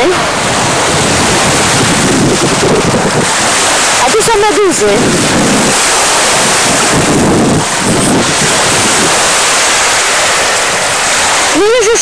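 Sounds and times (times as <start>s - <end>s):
small waves washing onto sand: 0.0s - 12.0s
wind buffeting microphone: 0.0s - 12.0s.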